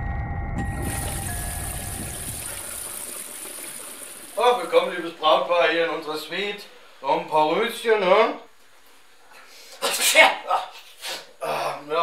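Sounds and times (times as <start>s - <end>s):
low rumble: 0.0s - 2.8s.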